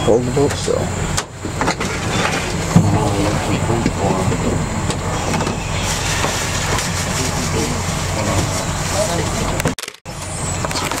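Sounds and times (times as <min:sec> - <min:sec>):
indistinct voices talking: 0:00.0 - 0:09.7
engine hum: 0:00.0 - 0:11.0.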